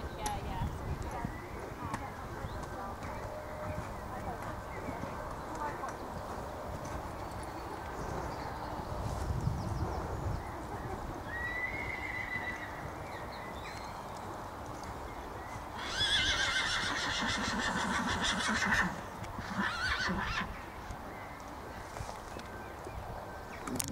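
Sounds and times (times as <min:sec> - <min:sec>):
horse whinnying: 0:11.3 - 0:12.7, 0:15.8 - 0:20.6.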